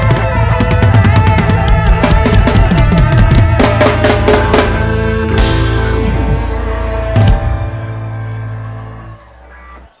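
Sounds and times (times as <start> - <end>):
reggae band chord ringing: 0.1 - 8.8.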